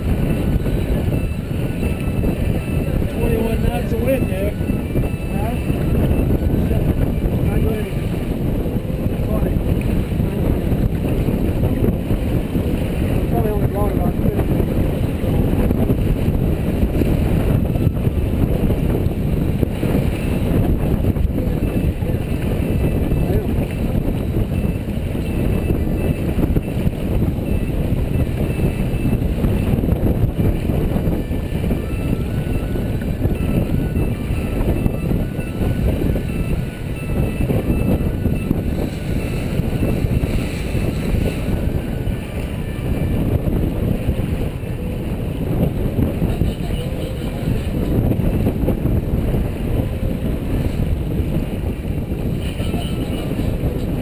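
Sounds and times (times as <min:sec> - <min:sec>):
water rushing along hull: 0:00.0 - 0:54.0
wind buffeting microphone: 0:00.0 - 0:54.0.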